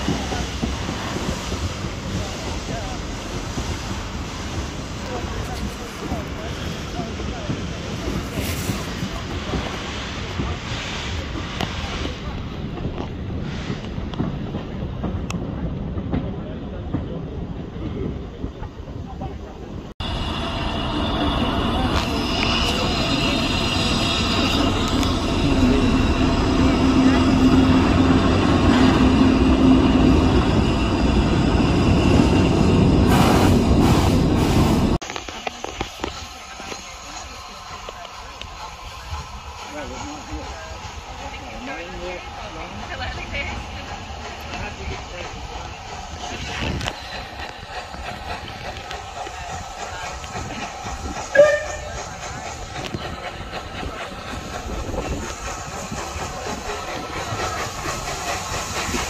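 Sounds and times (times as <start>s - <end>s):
train running on track: 0.0s - 59.0s
steady low drone: 20.0s - 34.2s.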